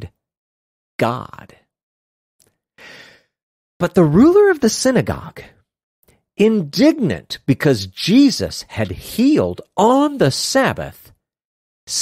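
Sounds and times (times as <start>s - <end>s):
person reading aloud: 1.0s - 1.7s, 3.8s - 5.6s, 6.4s - 11.2s.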